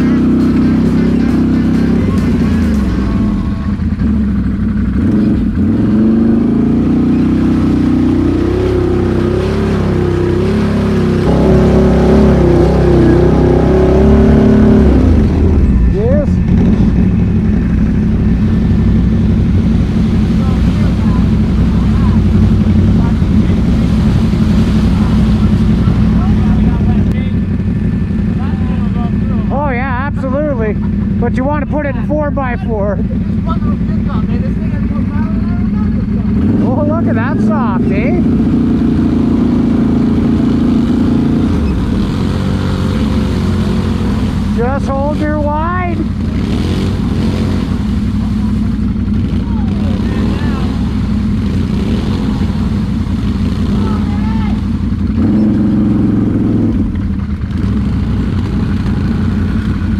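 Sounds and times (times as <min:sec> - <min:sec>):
atv engines running: 0:00.0 - 0:59.9.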